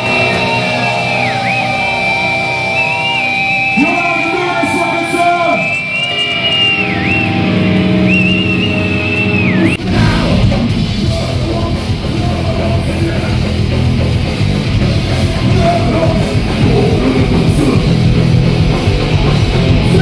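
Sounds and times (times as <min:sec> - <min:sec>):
electric guitars bending notes: 0:00.0 - 0:20.0.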